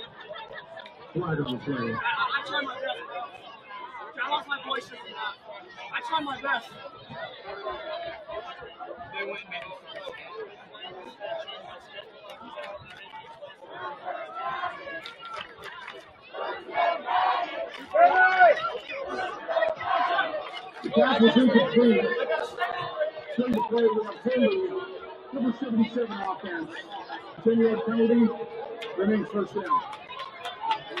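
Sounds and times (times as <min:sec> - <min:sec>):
crowd chatter: 0:00.0 - 0:31.0
people shouting: 0:16.3 - 0:23.1.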